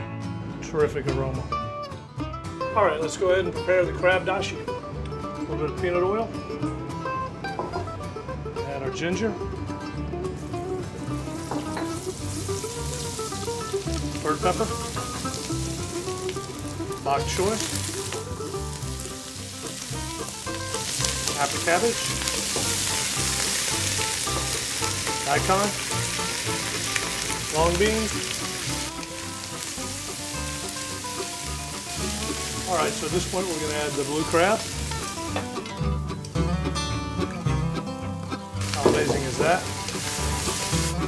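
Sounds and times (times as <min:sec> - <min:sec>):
background music: 0:00.0 - 0:41.0
ginger sizzling in oil: 0:10.3 - 0:35.7, 0:38.5 - 0:41.0.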